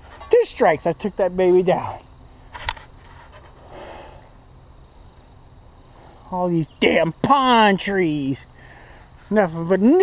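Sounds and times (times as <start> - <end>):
soft rustle: 2.5 - 4.2.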